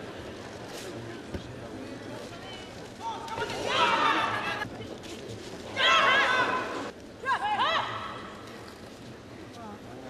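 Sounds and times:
high-pitched shout: 5.8s - 8.2s.

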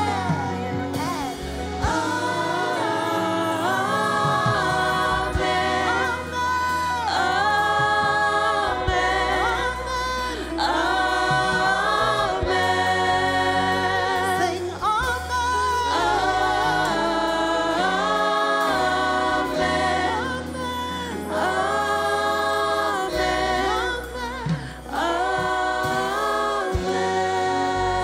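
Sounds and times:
gospel choir singing in harmony: 0.0s - 28.0s
sustained low bass: 0.0s - 28.0s.

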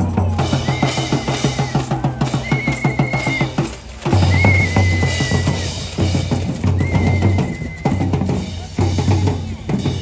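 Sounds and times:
parade drumming: 0.0s - 10.0s
whistle blasts: 0.4s - 5.9s, 6.7s - 8.3s.

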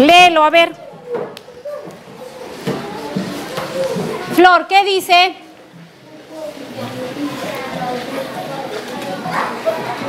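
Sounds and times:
child reading aloud: 0.8s - 4.4s, 6.0s - 10.0s.

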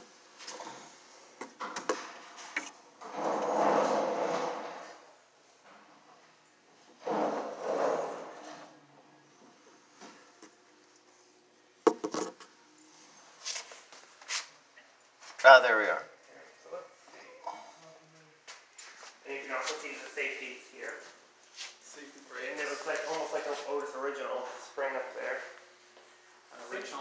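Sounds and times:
rubbing scrapes on wood and metal: 3.0s - 5.0s, 7.0s - 8.7s.

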